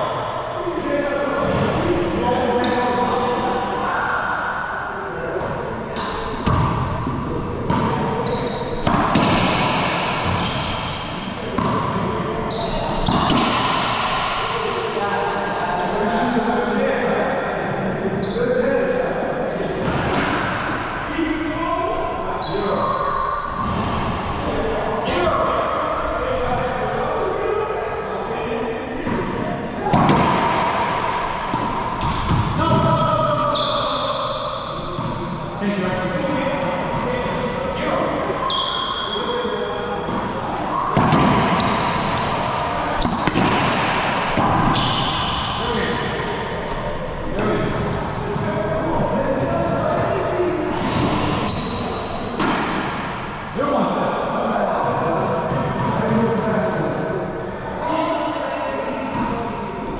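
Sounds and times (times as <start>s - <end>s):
sneakers squeaking on hardwood: 1.8s - 2.8s, 7.7s - 13.6s, 30.8s - 32.5s, 38.4s - 42.1s, 42.8s - 45.4s, 51.4s - 52.4s
racquet strikes: 5.4s - 15.0s, 19.8s - 20.9s, 29.0s - 33.0s, 40.0s - 46.5s, 50.6s - 53.6s.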